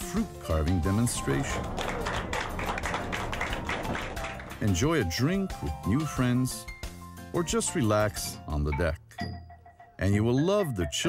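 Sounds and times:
people applauding: 0.8s - 5.7s.

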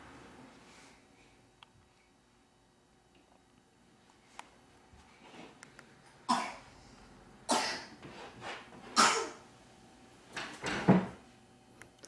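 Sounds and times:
sharp coughs: 6.3s - 6.6s, 7.5s - 8.0s, 9.0s - 9.4s.

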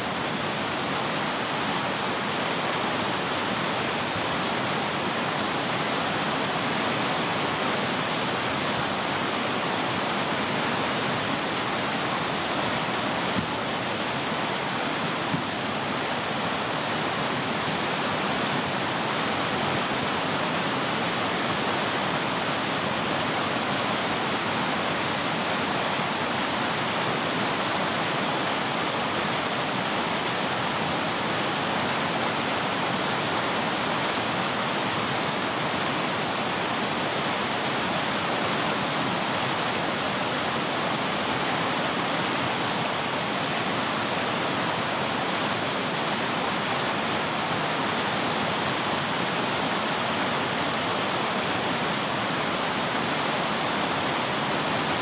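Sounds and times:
stream rushing over rocks: 0.0s - 55.0s.

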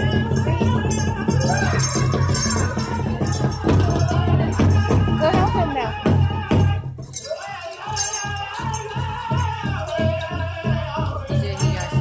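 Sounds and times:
big drum beat: 0.0s - 7.2s, 7.8s - 12.0s
dancers' bells rattling: 0.0s - 12.0s
drum group singing: 0.0s - 12.0s.

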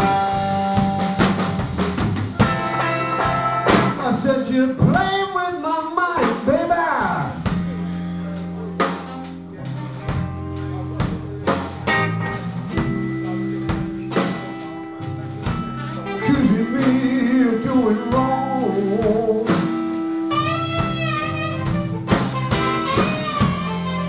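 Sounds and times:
bending guitar lead line: 0.0s - 24.0s
blues band playing: 0.0s - 24.0s
saxophone phrase: 15.4s - 18.8s, 20.2s - 24.0s.

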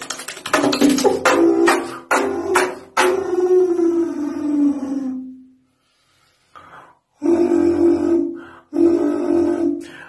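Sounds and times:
beatbox mouth percussion hit: 0.0s - 3.4s
long sliding vocal note: 3.1s - 5.5s, 7.2s - 10.0s.

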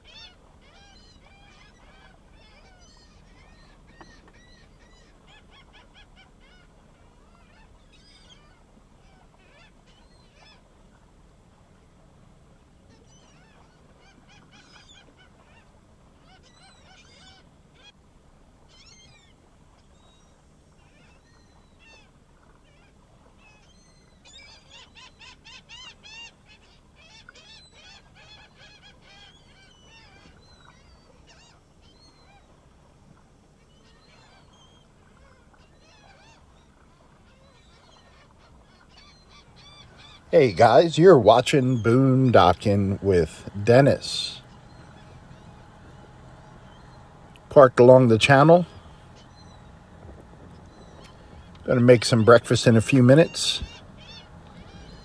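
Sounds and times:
birds calling: 0.0s - 10.7s, 12.8s - 18.0s, 18.7s - 32.8s, 33.5s - 55.0s.

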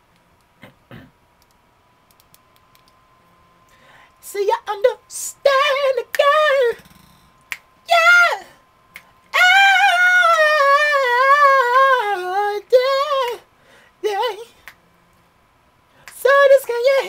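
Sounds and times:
man singing high vocal runs: 4.2s - 6.9s, 7.8s - 8.6s, 9.3s - 14.6s, 16.1s - 17.0s.

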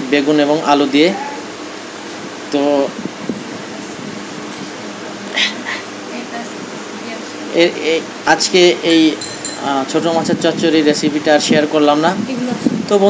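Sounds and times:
room noise with faint hiss: 0.0s - 13.0s.

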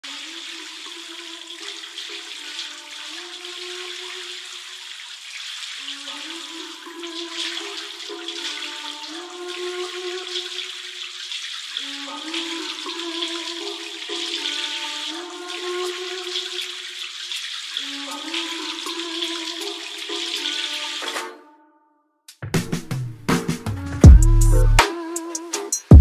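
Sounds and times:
filtered hip-hop instrumental melody: 22.3s - 26.0s.

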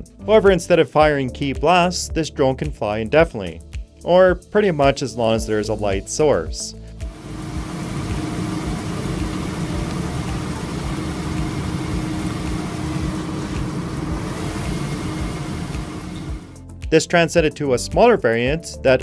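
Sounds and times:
drone rotor whirring: 7.0s - 16.6s.

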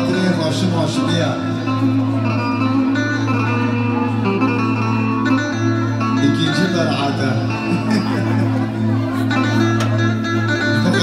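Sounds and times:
plucked string melody: 0.0s - 11.0s.

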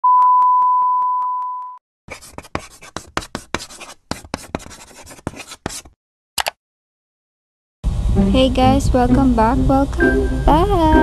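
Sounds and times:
steady test tone beep: 0.0s - 1.8s, 10.0s - 11.0s.

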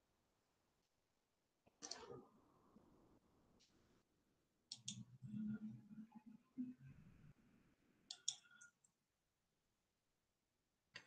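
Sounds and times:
computer mouse clicks: 1.7s - 2.2s, 4.7s - 5.1s, 8.1s - 8.9s.

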